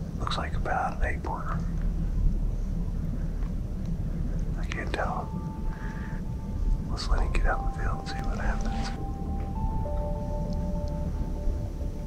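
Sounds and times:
steady low rumble: 0:00.0 - 0:12.0
man whispering: 0:00.2 - 0:01.8, 0:04.5 - 0:05.4, 0:06.9 - 0:09.0
thin steady tone: 0:00.2 - 0:12.0.

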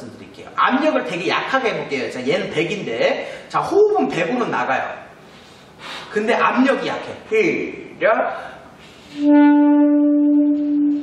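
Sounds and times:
alto saxophone steady note: 0:09.2 - 0:11.0.

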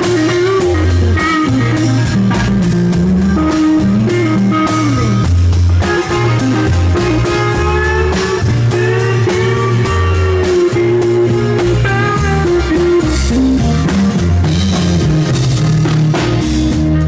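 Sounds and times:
bass guitar: 0:00.0 - 0:17.0
drum kit: 0:00.0 - 0:17.0
electric and acoustic guitars: 0:00.0 - 0:17.0
keyboard: 0:00.0 - 0:17.0.

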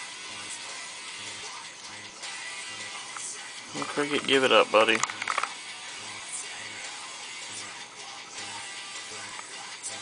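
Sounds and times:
quiet music with repeating bass: 0:00.0 - 0:10.0.

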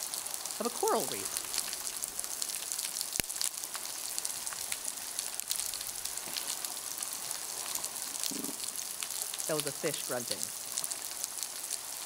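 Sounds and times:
low fish grunt: 0:08.2 - 0:08.7.

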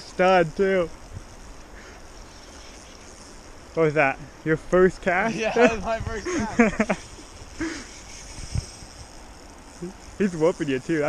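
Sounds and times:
wind on microphone: 0:05.6 - 0:09.2.

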